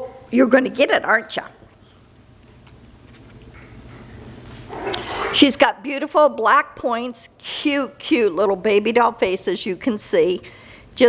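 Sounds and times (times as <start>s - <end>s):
puppy vocalizing: 4.7s - 5.4s.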